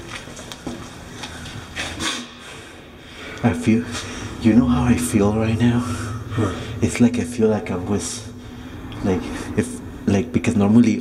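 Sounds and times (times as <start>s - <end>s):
low rumble of road traffic: 0.0s - 11.0s.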